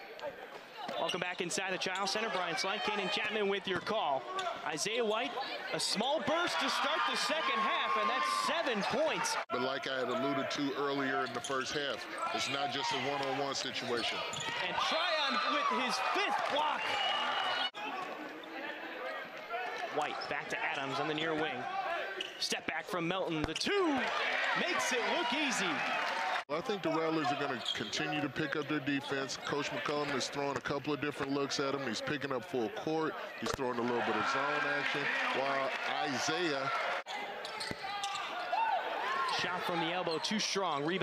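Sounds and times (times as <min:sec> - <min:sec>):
crowd chatter: 0:00.0 - 0:41.0
sneaker squeak: 0:13.7 - 0:14.7, 0:22.2 - 0:22.5, 0:27.5 - 0:28.1, 0:37.1 - 0:38.5.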